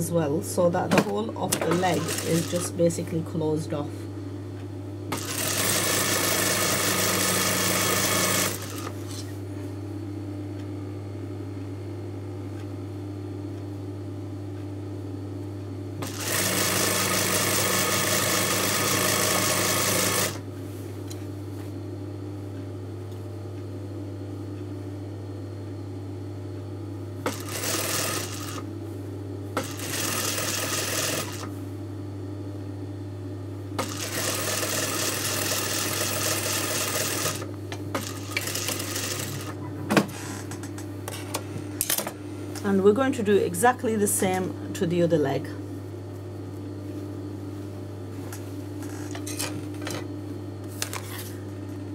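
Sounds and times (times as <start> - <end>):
steady low hum: 0.0 - 51.9
sewing machine stitching: 1.5 - 2.7, 5.1 - 9.2, 16.0 - 20.4, 27.3 - 28.6, 29.6 - 31.5, 33.8 - 39.6.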